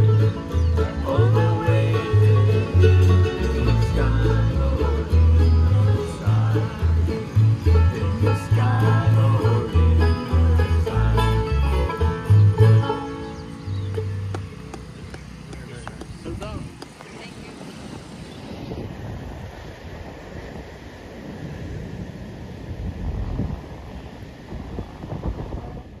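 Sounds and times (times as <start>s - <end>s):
bluegrass band low note: 0.0s - 15.1s
wind buffeting microphone: 0.0s - 26.0s
faint voices: 12.8s - 18.2s.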